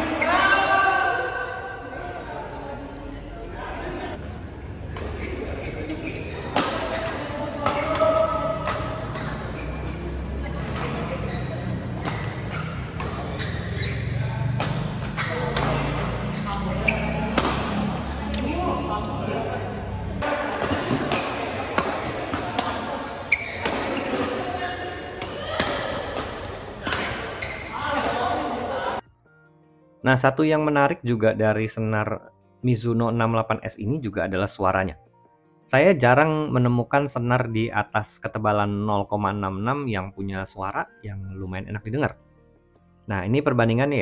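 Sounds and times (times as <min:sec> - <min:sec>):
players' voices: 0:00.0 - 0:29.0
rackets hitting shuttlecock: 0:04.2 - 0:09.5, 0:10.6 - 0:11.2, 0:11.9 - 0:18.6, 0:20.2 - 0:28.7.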